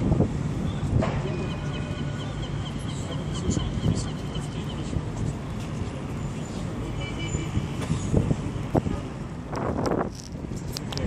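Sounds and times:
distant city traffic rumble: 0.0 - 11.0
wind on microphone: 7.6 - 11.0.

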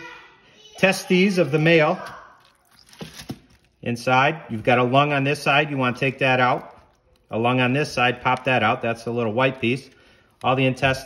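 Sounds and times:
wet clicks and crackles: 1.5 - 3.8, 5.8 - 11.0.

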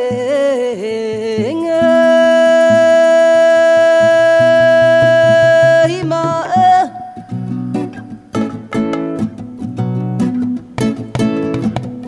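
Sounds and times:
long high held note: 1.6 - 3.0.

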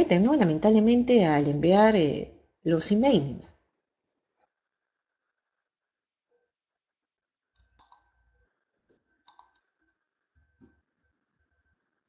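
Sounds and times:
computer mouse clicking: 7.6 - 8.1, 9.2 - 9.7.

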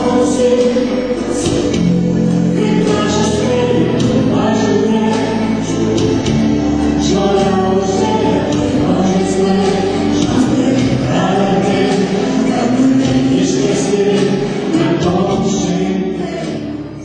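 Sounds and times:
backing music: 0.0 - 17.0
man and woman singing: 0.0 - 17.0.

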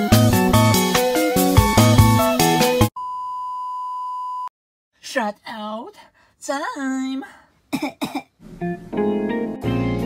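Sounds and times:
background music: 0.0 - 2.9, 8.5 - 10.0.

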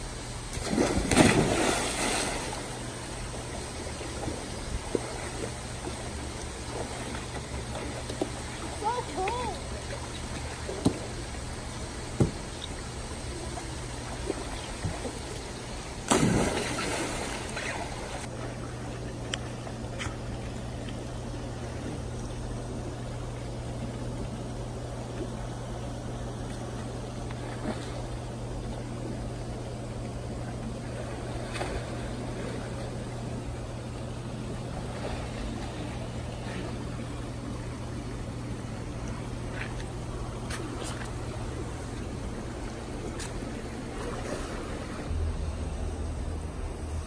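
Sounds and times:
steady low hum: 0.0 - 47.0
water trickling and splashing: 0.5 - 21.0.

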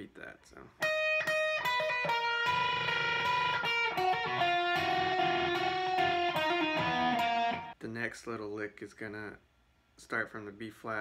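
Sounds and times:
electric guitar lead: 0.8 - 7.8.

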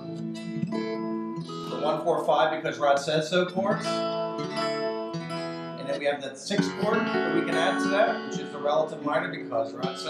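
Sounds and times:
acoustic guitars strumming chords: 0.0 - 10.0.

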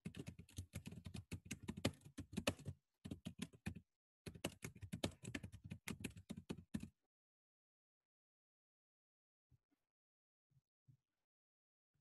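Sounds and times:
typing on computer keyboard: 0.0 - 6.9.

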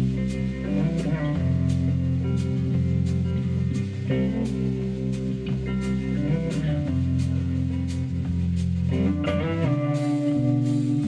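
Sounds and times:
bass guitar: 0.0 - 11.0
drum kit: 0.0 - 11.0
electric guitar: 0.0 - 11.0.

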